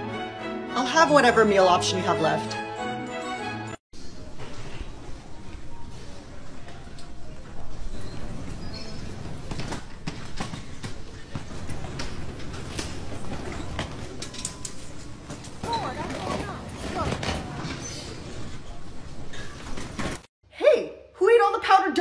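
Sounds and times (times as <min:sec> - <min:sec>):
woman speaking: 0:00.8 - 0:02.6
suitcases clattering on carousel: 0:04.1 - 0:20.3.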